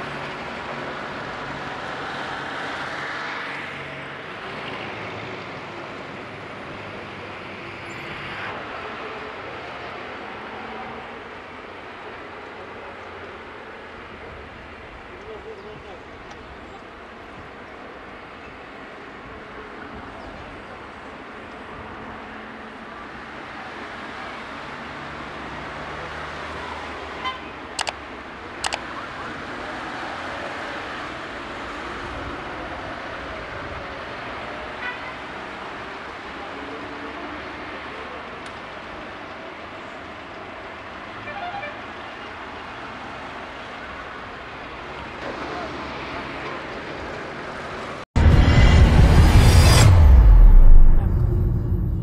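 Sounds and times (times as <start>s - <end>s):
sharp clicks: 27.8s - 28.0s, 28.6s - 28.8s
cars driving past: 45.0s - 52.0s.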